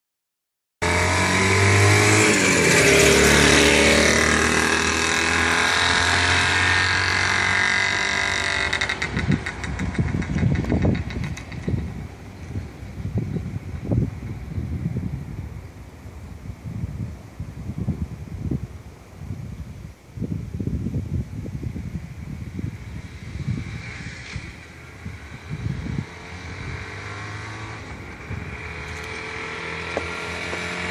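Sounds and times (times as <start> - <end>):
two-stroke motorcycle passing: 0.8 - 12.6, 22.5 - 30.9
low thumps: 29.8 - 30.9.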